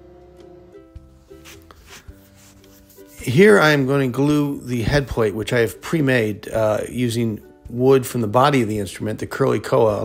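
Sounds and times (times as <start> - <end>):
plucked ukulele music: 0.0 - 8.6.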